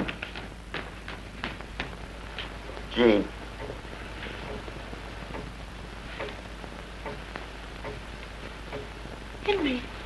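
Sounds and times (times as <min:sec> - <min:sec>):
film soundtrack hiss and hum: 0:00.0 - 0:10.0.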